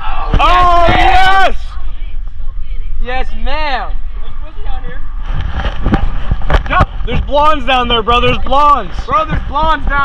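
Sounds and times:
wind buffeting microphone: 4.1 - 10.0.

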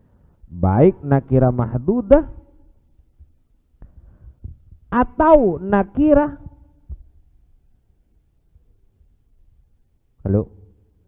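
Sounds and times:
soft low thumps: 3.1 - 4.9, 6.2 - 7.3.

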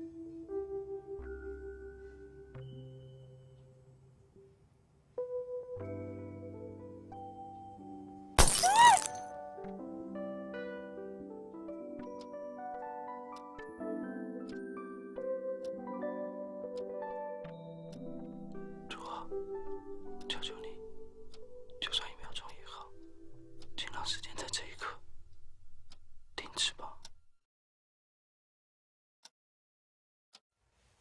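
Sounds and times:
soft background music: 0.0 - 8.4, 9.1 - 27.4
person whispering: 18.9 - 19.4, 20.2 - 20.8, 21.8 - 23.0, 23.8 - 25.0, 26.4 - 27.1.

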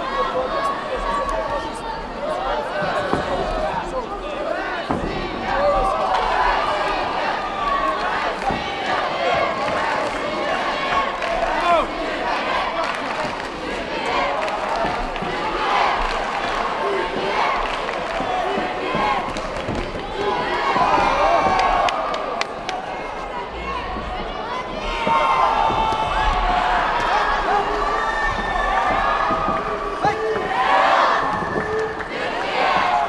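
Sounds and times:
crowd shouting and cheering: 0.0 - 33.0.

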